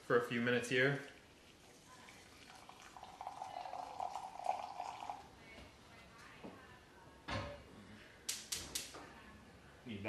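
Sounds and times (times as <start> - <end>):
water trickling into glass cup: 0.7 - 5.4.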